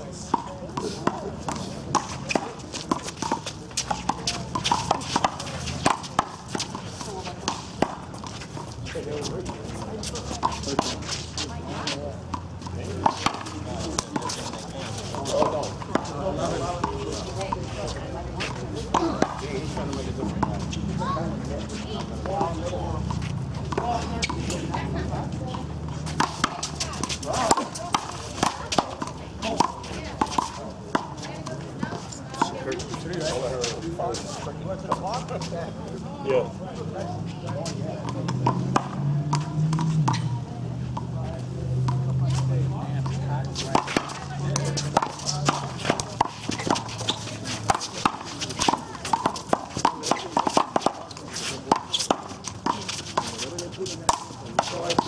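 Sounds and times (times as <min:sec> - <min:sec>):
voices talking: 0:00.0 - 0:55.0.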